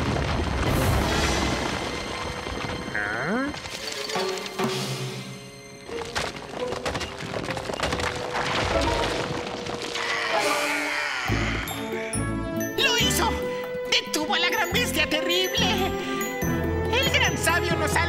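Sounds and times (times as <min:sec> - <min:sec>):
rocks clattering: 0:00.0 - 0:04.7, 0:05.8 - 0:10.3.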